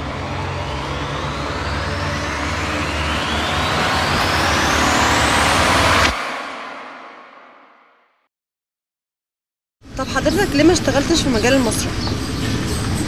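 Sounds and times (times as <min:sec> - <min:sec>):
synthesized rising swoosh: 0:00.0 - 0:08.0.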